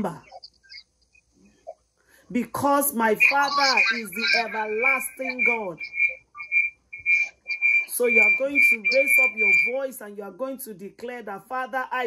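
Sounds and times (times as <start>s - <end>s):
pulsing high-pitched whine: 3.0s - 9.9s.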